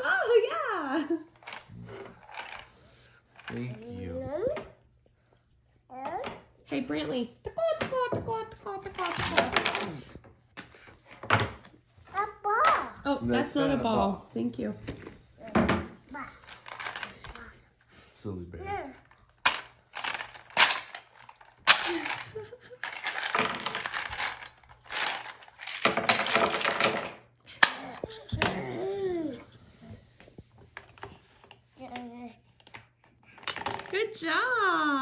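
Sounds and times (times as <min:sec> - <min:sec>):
handling and rustling noises: 0:01.4 - 0:05.1, 0:13.9 - 0:27.1
toddler babbling: 0:28.1 - 0:29.5.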